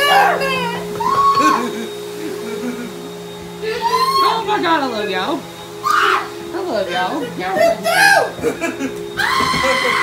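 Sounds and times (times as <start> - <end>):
steady mechanical hum: 0.0 - 10.0.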